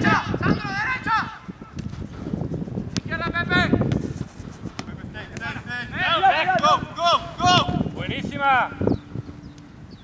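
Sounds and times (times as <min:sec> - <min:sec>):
players shouting: 0:05.4 - 0:08.8
ball strikes: 0:06.4 - 0:06.8, 0:07.4 - 0:07.9.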